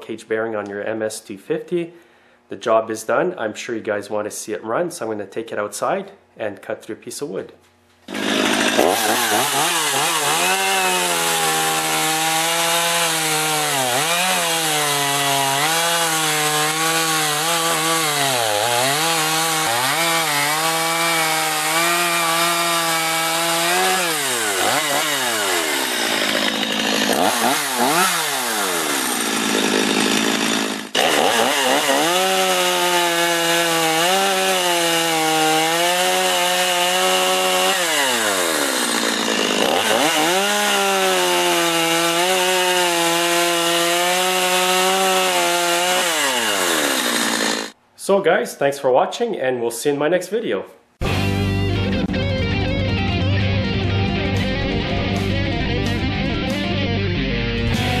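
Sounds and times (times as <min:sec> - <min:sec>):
chainsaw cutting through logs: 0:08.0 - 0:47.8.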